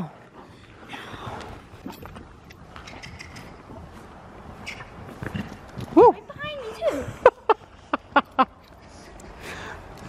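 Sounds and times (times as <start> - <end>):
soft hoofbeats on sand: 3.3 - 7.1.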